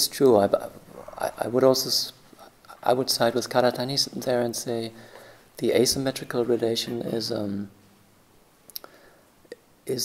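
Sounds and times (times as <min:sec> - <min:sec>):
man speaking: 0:00.0 - 0:07.8.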